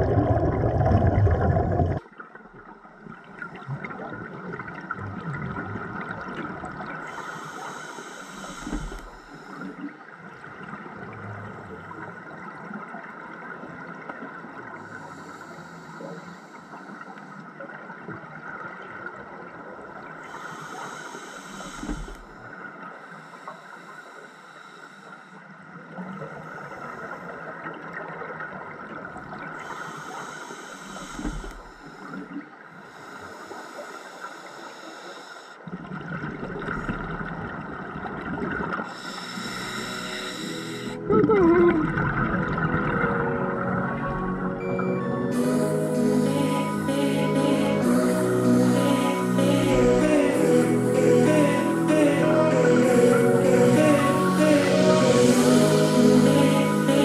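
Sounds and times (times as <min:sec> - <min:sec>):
exhaled bubbles rushing: 0:00.0 - 0:02.1, 0:41.0 - 0:44.6
steady underwater hum: 0:00.0 - 0:57.0
diver breathing through regulator: 0:07.0 - 0:09.9, 0:14.8 - 0:17.4, 0:20.2 - 0:22.4, 0:29.6 - 0:35.6, 0:38.8 - 0:41.1.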